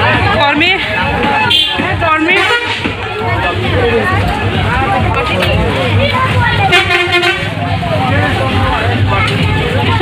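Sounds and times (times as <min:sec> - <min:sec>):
people chattering: 0:00.0 - 0:10.0
vehicle horn honk: 0:01.5 - 0:02.9, 0:06.7 - 0:07.6.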